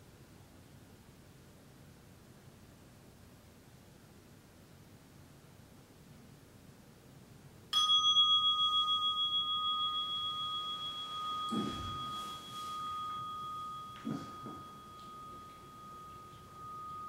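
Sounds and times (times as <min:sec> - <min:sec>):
meditation bell ringing: 0:07.8 - 0:17.0
clothing rustle: 0:11.0 - 0:13.6.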